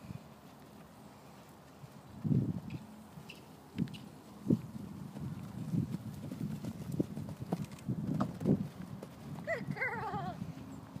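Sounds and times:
hoofbeats on sand: 4.5 - 11.0.

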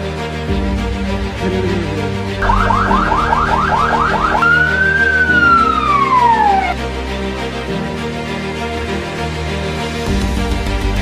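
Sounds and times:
background music: 0.0 - 11.0
police siren yelp and wail: 2.4 - 6.9.

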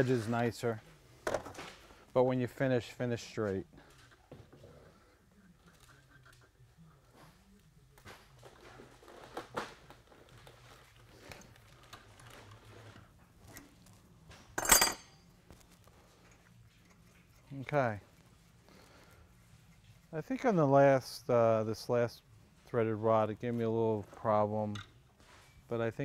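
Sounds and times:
metal clink: 14.6 - 15.3.

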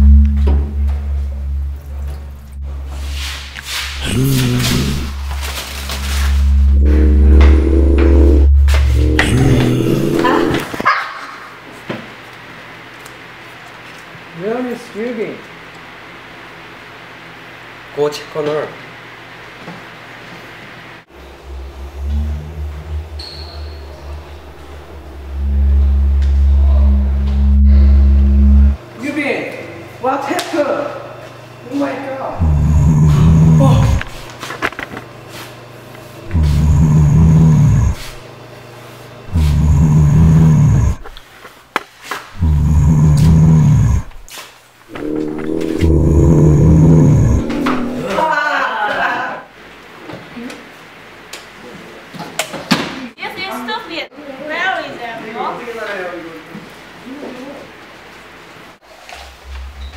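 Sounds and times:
low zombie growl: 3.6 - 10.8, 21.2 - 28.8, 32.3 - 34.3, 36.2 - 38.2, 39.3 - 41.1, 42.4 - 44.3, 44.9 - 48.4.

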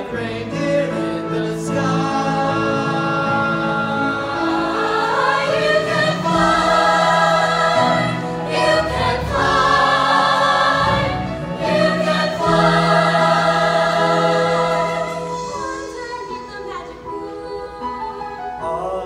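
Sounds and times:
choir singing held chords: 0.0 - 18.0.

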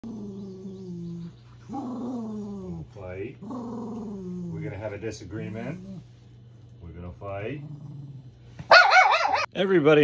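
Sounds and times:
small dog growling: 0.0 - 6.2, 7.3 - 8.7.

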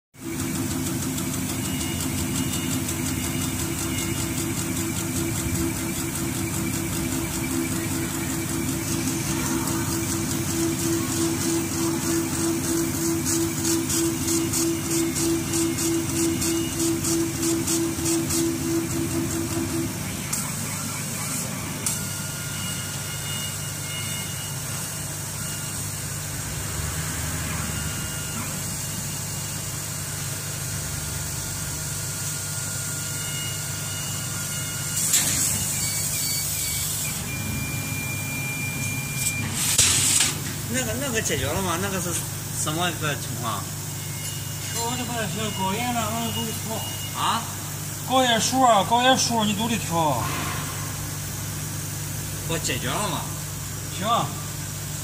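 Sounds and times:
pulsing motor whine: 0.2 - 39.6, 41.0 - 51.8
machine hum and hiss: 0.2 - 55.0.

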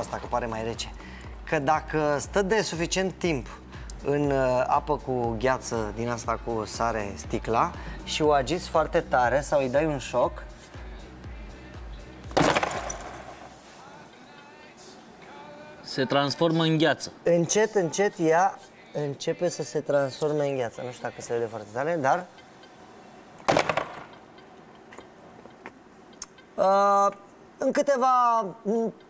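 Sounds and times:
background music with bass: 0.0 - 13.4
plastic bottle knocking on table: 12.3 - 13.4.

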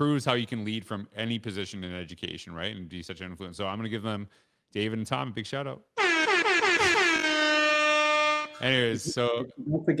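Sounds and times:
air horn blast: 6.0 - 9.0.

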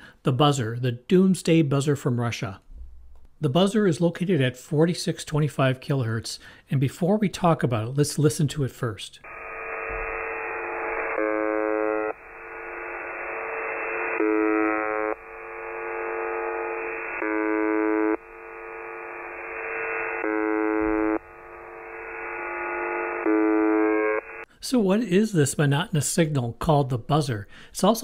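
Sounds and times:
monotonous radio buzz tone: 9.2 - 24.5
radio static: 9.3 - 24.5.

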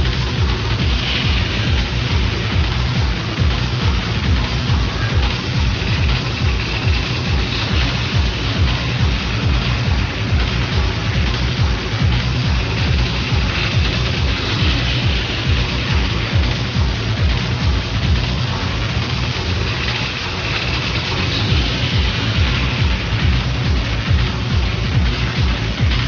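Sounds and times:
hissing hi-hats: 0.0 - 26.0
pounding kick drum: 0.0 - 26.0
techno music: 0.0 - 26.0.

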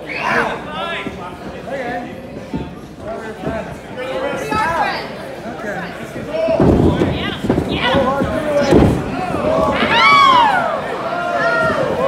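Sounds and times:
heavy thuds on wrestling ring: 6.5 - 10.4
voices shouting: 9.1 - 12.0.

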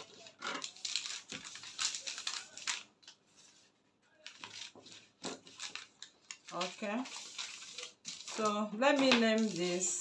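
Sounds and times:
paper crackle: 0.0 - 10.0.

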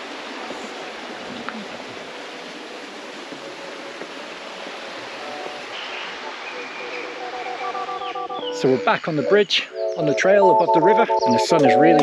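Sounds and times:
river rushing over rocks: 0.0 - 7.8.

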